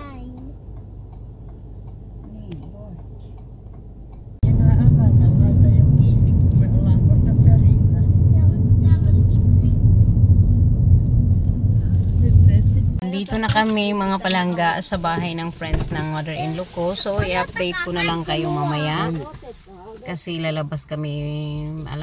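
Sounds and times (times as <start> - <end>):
car cabin hum: 0.0 - 22.0
engine and tyre rumble: 0.0 - 22.0.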